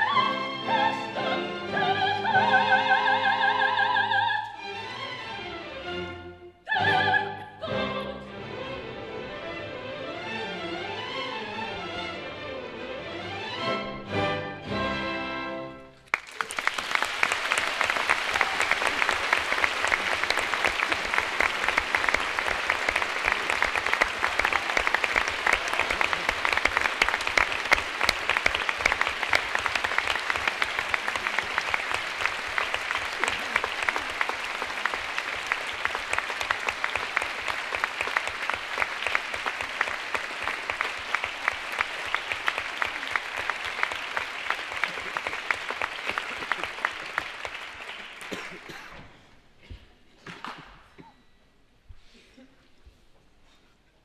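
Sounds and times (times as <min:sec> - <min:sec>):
audience applauding: 0:16.0 - 0:48.9.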